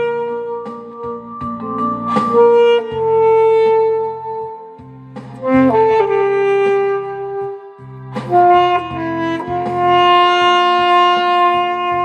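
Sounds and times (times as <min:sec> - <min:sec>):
alto saxophone long note: 0:00.0 - 0:01.4, 0:02.1 - 0:12.0
backing track with bass: 0:00.0 - 0:12.0.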